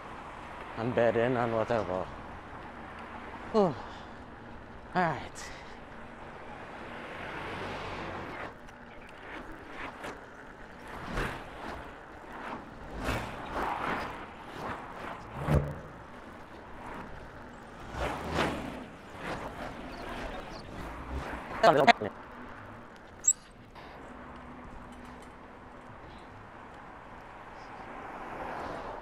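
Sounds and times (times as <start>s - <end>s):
bicycle road noise: 0.0s - 29.0s
cars passing: 0.0s - 29.0s.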